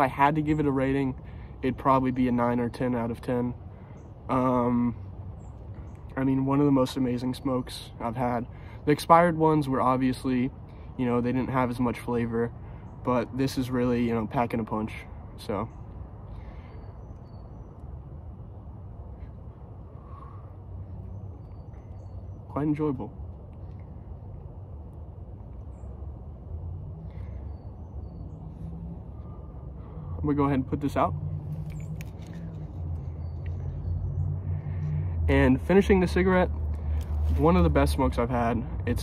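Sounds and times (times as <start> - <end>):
low engine hum: 0.0 - 39.0.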